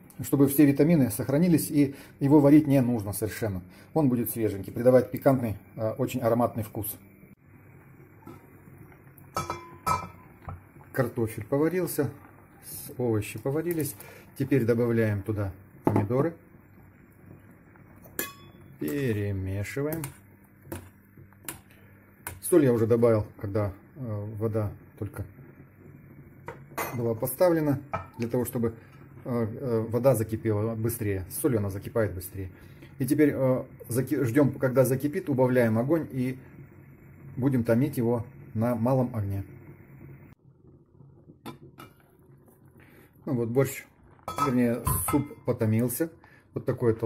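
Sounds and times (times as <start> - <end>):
soup simmering: 7.3 - 47.0
metal spoon clinking on pot: 9.4 - 10.2, 18.1 - 18.6, 44.3 - 45.4.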